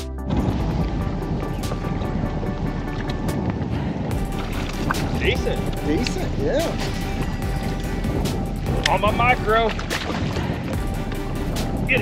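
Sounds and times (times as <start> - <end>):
background music: 0.0 - 12.0
wind buffeting microphone: 0.2 - 12.0.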